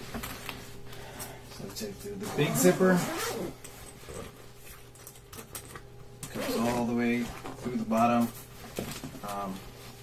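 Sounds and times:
backpack zipper opening: 0:02.2 - 0:04.2, 0:06.3 - 0:07.4.

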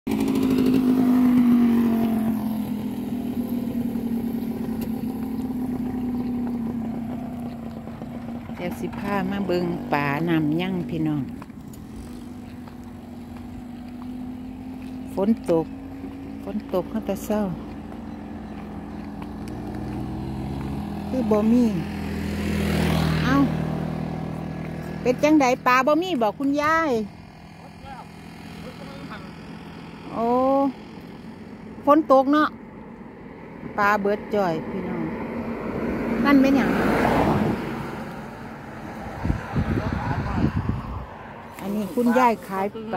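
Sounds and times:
vehicle passing on wet road: 0:00.1 - 0:07.8, 0:11.0 - 0:25.9, 0:34.6 - 0:42.9
small motorcycle engine running: 0:00.1 - 0:42.9.

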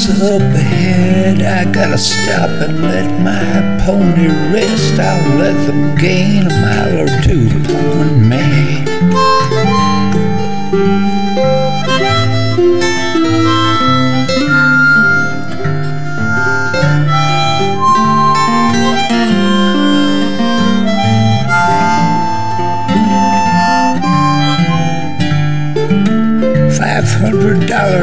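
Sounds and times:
guitar chords: 0:00.0 - 0:28.0
harmonica melody: 0:00.0 - 0:28.0.

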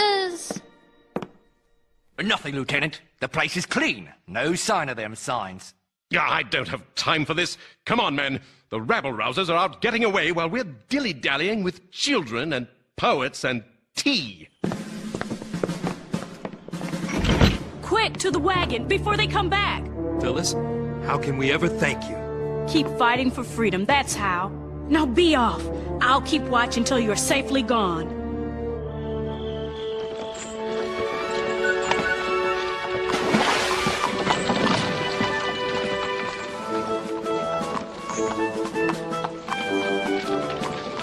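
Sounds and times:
background music: 0:00.0 - 0:03.0, 0:14.6 - 0:41.0
horse hooves clip-clopping: 0:14.7 - 0:17.2, 0:30.0 - 0:41.0.

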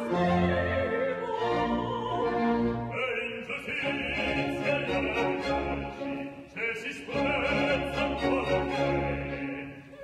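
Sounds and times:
orchestra playing: 0:00.0 - 0:09.9
operatic singing: 0:00.0 - 0:10.0.

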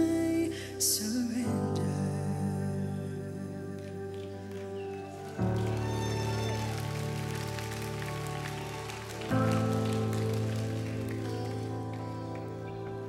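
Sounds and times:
band playing sustained chords: 0:00.0 - 0:13.0.

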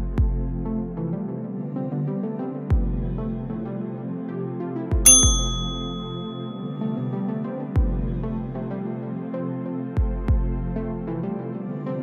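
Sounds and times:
ambient background music: 0:00.0 - 0:12.0
bell-like timer ding: 0:05.1 - 0:06.9.

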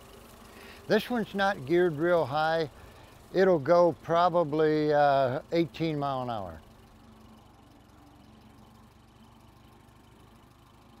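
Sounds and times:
tractor engine idling: 0:00.0 - 0:11.0.

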